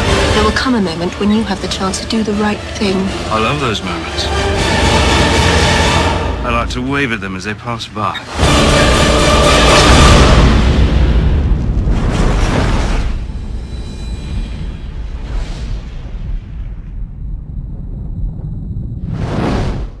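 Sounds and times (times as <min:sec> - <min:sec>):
whooshes: 0:08.3 - 0:20.0
heavy rumbling boom: 0:08.4 - 0:20.0.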